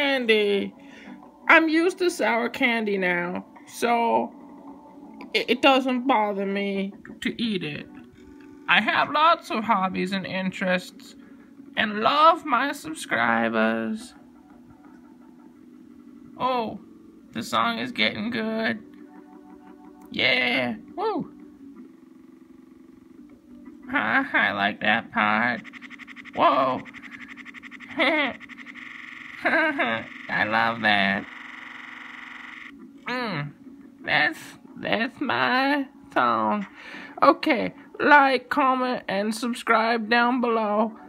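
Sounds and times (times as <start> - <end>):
faint electronic background music: 0.0 - 41.0
person narrating: 26.4 - 27.0, 27.9 - 28.4, 29.7 - 31.3.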